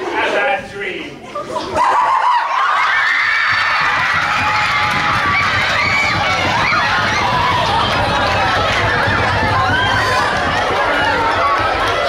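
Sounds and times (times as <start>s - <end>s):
people talking and laughing: 0.0s - 12.0s
crowd cheering and shrieking: 1.4s - 12.0s.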